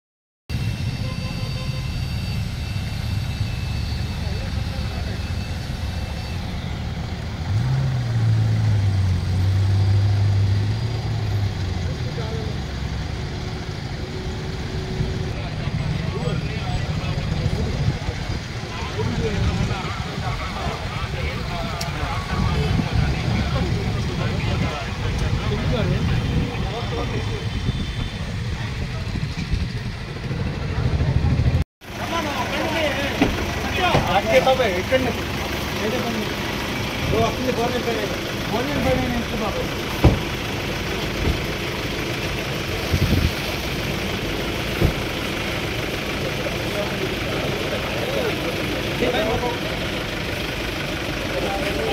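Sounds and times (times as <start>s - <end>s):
loud low engine drone: 0.5s - 51.9s
vehicles driving past: 0.5s - 51.9s.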